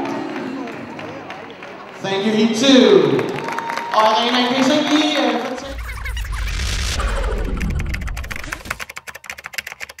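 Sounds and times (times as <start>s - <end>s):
deep boom with falling sweep: 5.6s - 8.5s.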